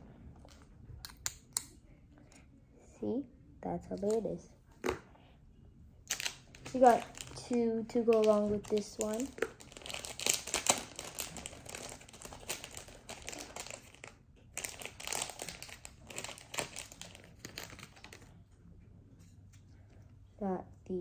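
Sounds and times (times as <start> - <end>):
plastic wrapping crinkling: 6.1 - 18.3.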